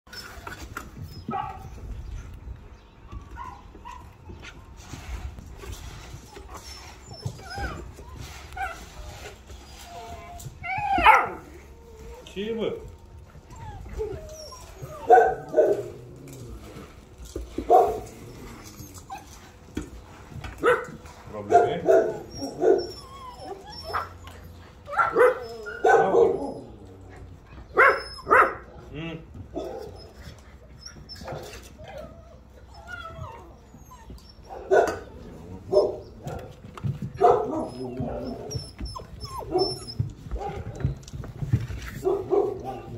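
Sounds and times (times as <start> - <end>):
puppies whining and yelping: 0.1 - 28.8, 29.6 - 41.8.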